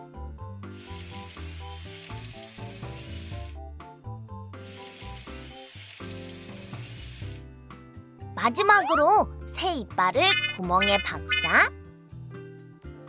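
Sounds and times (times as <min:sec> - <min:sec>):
cartoon dental drill whine: 0:00.7 - 0:03.6, 0:04.6 - 0:07.5
cheerful children's music: 0:08.2 - 0:13.0.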